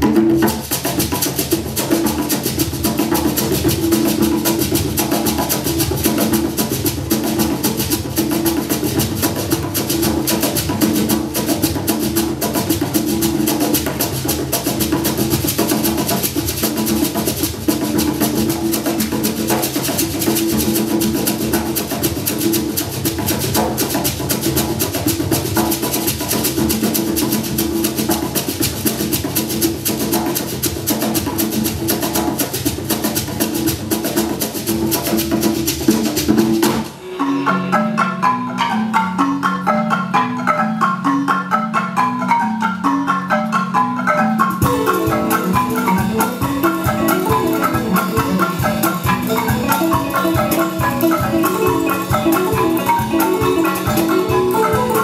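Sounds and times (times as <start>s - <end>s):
hand drums fast rhythm: 0.0s - 37.0s, 44.4s - 55.0s.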